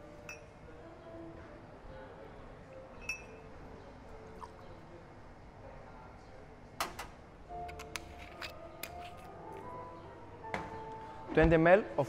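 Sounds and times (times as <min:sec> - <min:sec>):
quiet background music: 0:00.0 - 0:12.0
clinks of glassware and jigger: 0:03.0 - 0:03.4.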